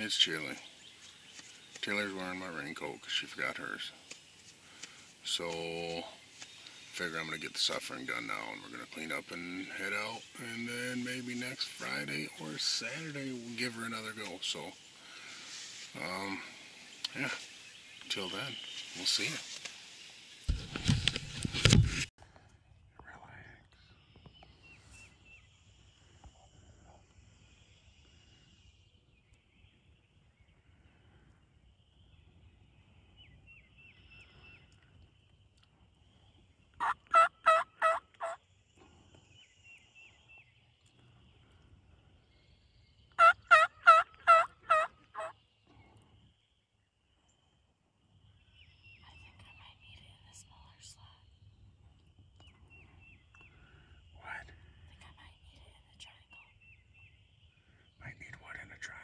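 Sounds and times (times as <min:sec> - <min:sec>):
turkey yelps: 0:36.8 - 0:38.4, 0:43.2 - 0:45.3.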